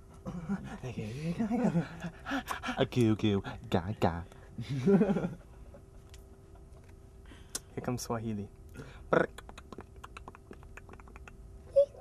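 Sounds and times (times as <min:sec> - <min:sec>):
tongue clicks: 0:09.2 - 0:11.4.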